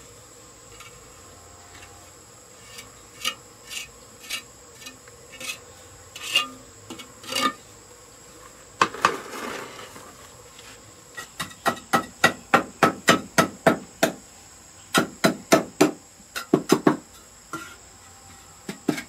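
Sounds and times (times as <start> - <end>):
high insect drone: 0.0 - 19.0
scrape: 1.6 - 7.6, 8.9 - 10.9, 17.5 - 19.0.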